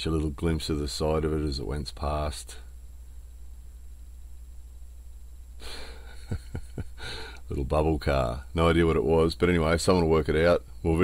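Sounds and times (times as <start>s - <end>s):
soft breathy rush of noise: 7.0s - 7.5s.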